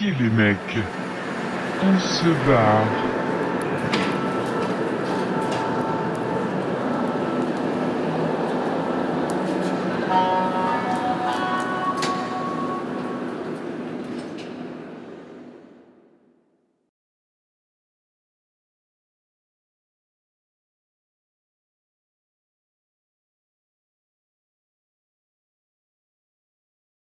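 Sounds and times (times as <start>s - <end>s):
metro train rumbling: 0.0s - 16.4s
whining tones: 0.6s - 14.4s.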